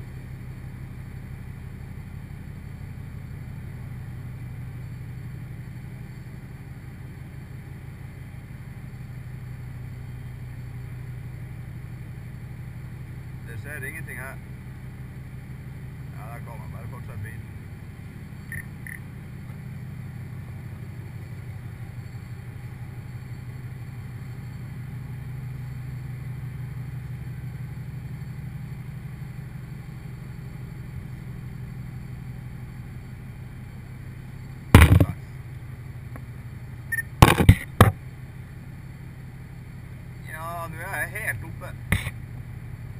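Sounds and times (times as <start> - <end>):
low mechanical hum: 0.0 - 42.9
sharp loud knocks: 34.8 - 35.2, 37.2 - 38.0.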